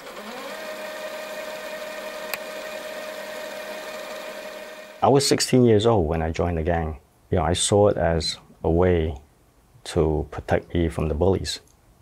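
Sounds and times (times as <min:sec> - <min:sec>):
click: 0:02.3 - 0:02.5.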